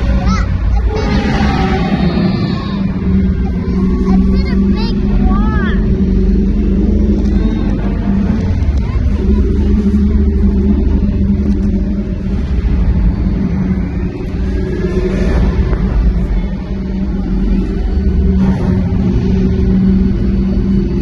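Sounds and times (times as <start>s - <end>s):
low rumbling soundtrack: 0.0s - 21.0s
audience high cries: 0.8s - 4.0s.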